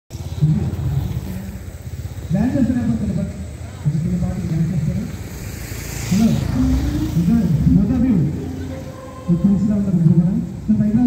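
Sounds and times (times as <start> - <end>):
low steady rumble: 0.1 - 11.0
man's voice: 6.1 - 11.0.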